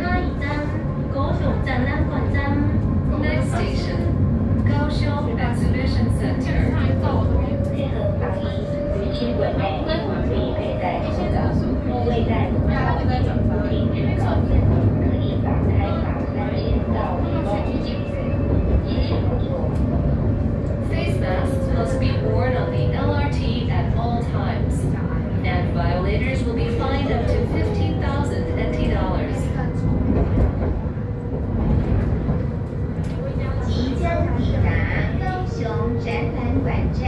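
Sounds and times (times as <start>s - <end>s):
indistinct voices talking: 0.0s - 37.0s
tram rumbling: 0.0s - 37.0s.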